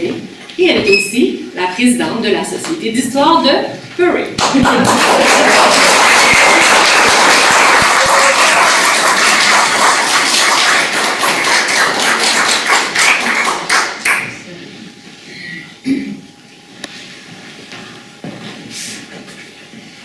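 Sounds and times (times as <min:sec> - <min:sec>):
audience applauding: 0:04.4 - 0:14.3.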